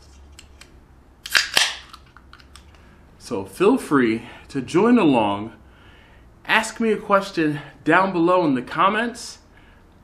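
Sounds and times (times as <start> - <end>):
sharp snapping sounds: 0.3 - 2.8.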